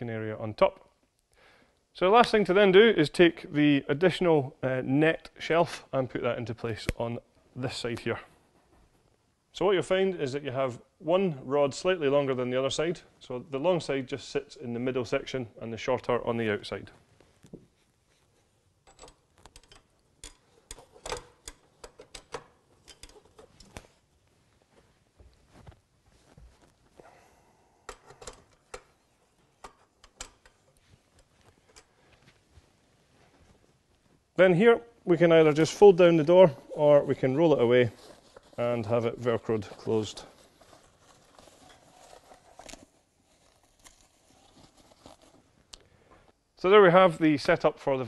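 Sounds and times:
fabric rustling: 0:23.4 - 0:27.2, 0:30.7 - 0:34.3.

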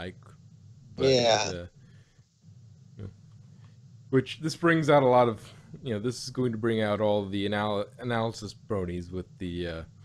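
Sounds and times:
person saying yeah: 0:01.0 - 0:01.6, 0:04.2 - 0:09.8.

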